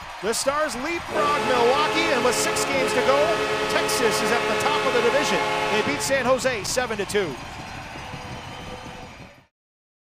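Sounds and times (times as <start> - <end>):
arena crowd noise: 0.0 - 9.5.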